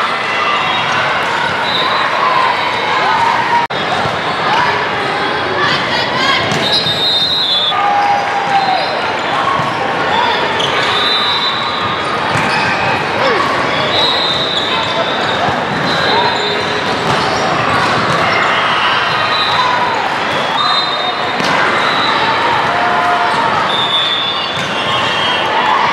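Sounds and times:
players calling and spectators talking: 0.0 - 25.9.

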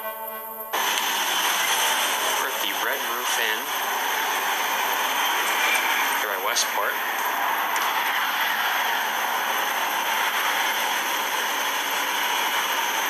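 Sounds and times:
music: 0.0 - 3.4
loud background hiss: 0.1 - 13.0.

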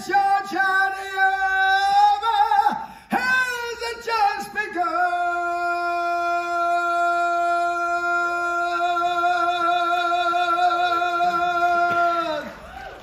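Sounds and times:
man singing a long high note: 0.0 - 12.5.

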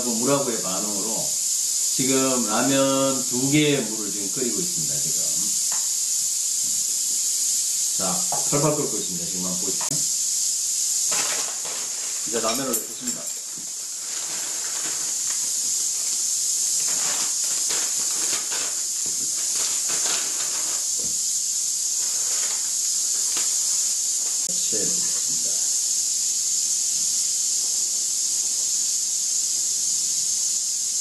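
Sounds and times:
steam hissing: 0.0 - 31.0
noodle packets crinkling: 11.1 - 16.2, 16.8 - 21.1.

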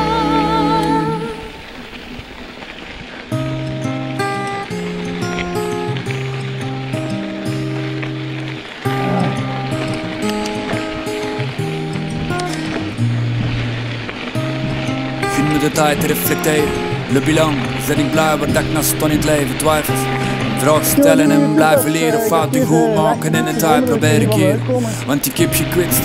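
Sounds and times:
pop song singing: 0.0 - 1.6, 15.4 - 26.0
keyboard notes over steady beat: 20.1 - 25.0.

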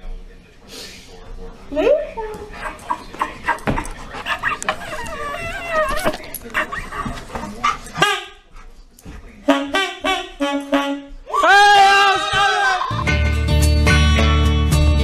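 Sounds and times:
knocks and scuffs: 3.0 - 9.4
dog yipping: 4.2 - 7.1
dog whining: 4.2 - 7.3.

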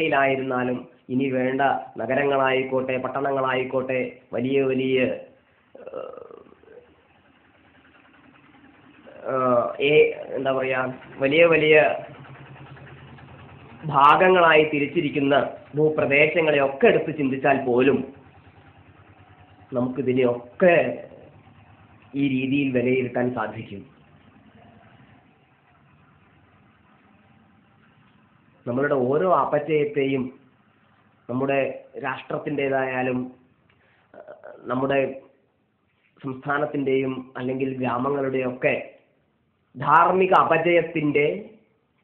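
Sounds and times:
low room noise: 0.0 - 42.0.

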